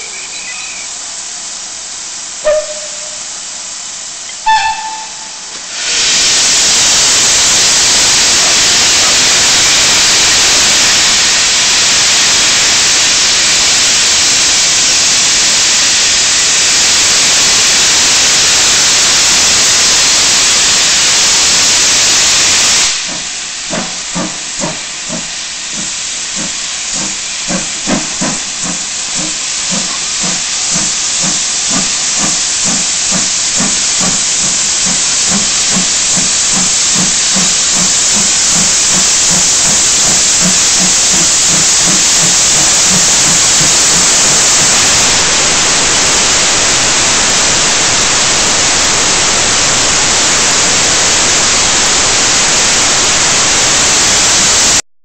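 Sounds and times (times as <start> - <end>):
loud steady hiss: 0.0 - 54.8
steam locomotive chuffing: 0.0 - 54.8.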